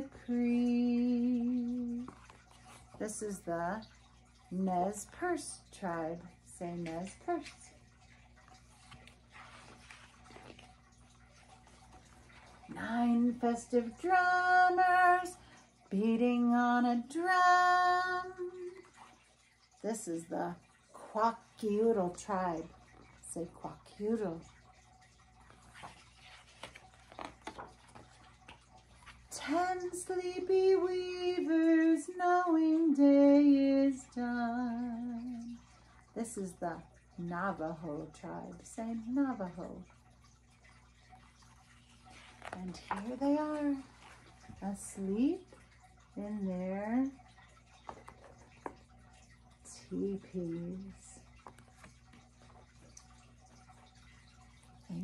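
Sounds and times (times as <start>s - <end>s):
low steady hum: 0.0s - 55.0s
book handling clicks and rustles: 8.7s - 10.8s, 25.5s - 29.2s
page turning: 25.7s - 28.6s.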